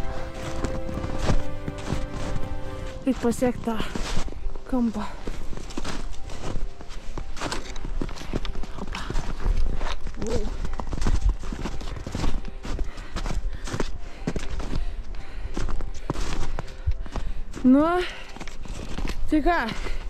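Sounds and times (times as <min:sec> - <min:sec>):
footsteps crunching in snow: 0:00.0 - 0:20.0.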